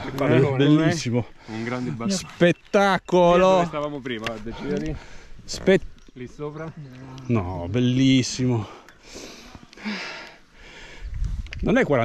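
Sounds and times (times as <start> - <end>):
hissy breathing: 8.6 - 11.5.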